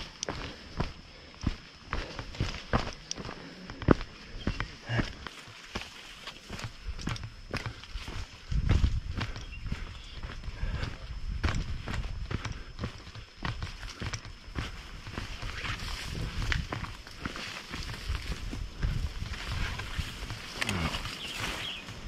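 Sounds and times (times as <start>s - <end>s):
footsteps on dirt trail: 0.0s - 22.0s.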